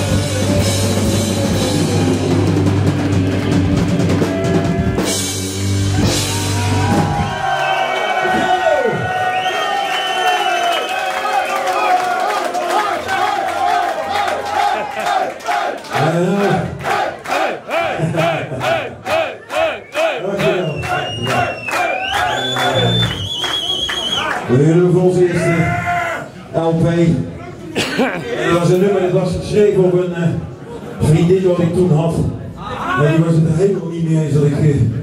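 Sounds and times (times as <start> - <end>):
heavy metal band playing: 0.0 - 7.6
crowd shouting: 6.0 - 22.9
crowd clapping: 6.6 - 24.6.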